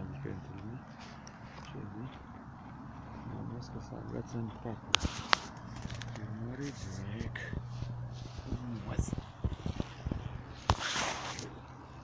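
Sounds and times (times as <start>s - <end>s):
rustling of dry reeds: 4.9s - 12.0s.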